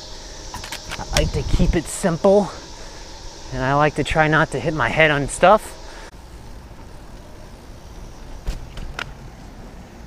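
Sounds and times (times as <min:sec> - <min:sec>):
bicycle tyres on paved road: 0:02.3 - 0:03.5, 0:05.8 - 0:10.0.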